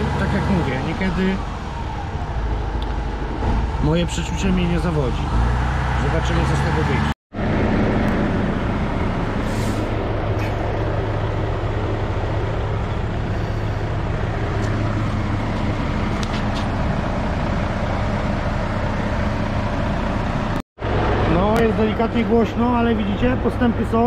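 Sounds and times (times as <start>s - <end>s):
vehicle engine idling: 7.4s - 24.0s.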